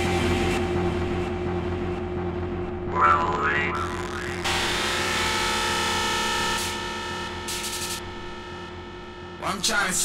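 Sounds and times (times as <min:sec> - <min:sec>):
steady held electronic tone: 0:02.9 - 0:09.3.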